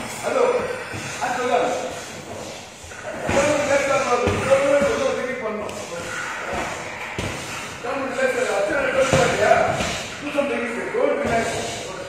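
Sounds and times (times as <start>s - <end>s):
voices in reverberant hall: 0.0s - 12.0s
heavy thuds: 2.9s - 5.2s, 5.8s - 10.3s.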